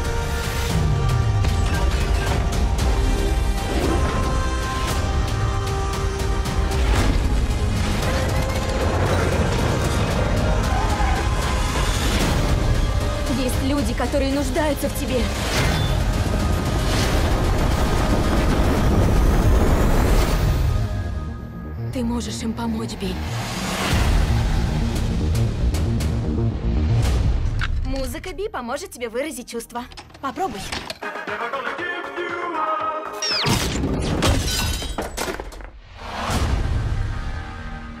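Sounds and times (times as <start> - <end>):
glass shattering: 33.4 - 35.7.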